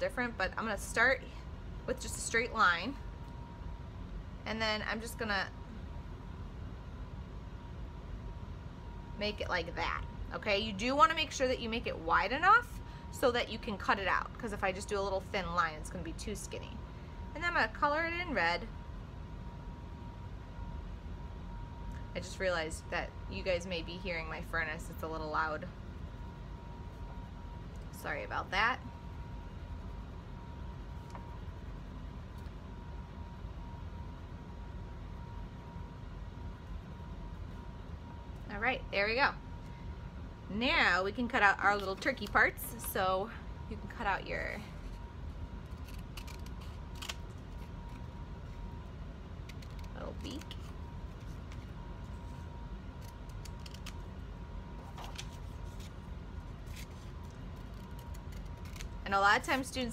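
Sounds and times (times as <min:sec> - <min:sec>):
faint steady whine: 0:00.0 - 0:59.9
furnace low rumble: 0:00.0 - 0:59.9
steady low hum: 0:00.0 - 0:59.9
scissors snipping paper: 0:45.7 - 0:48.1, 0:49.4 - 0:51.6, 0:53.0 - 0:54.0, 0:56.6 - 0:59.0.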